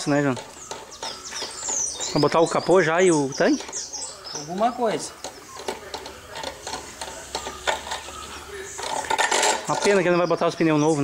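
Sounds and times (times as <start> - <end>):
metal parts clicking and knocking: 0.0 - 2.8, 3.4 - 10.2.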